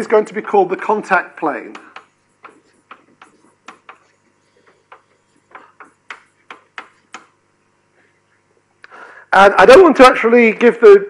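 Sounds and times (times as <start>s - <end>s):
chalk tapping on blackboard: 1.6s - 7.4s.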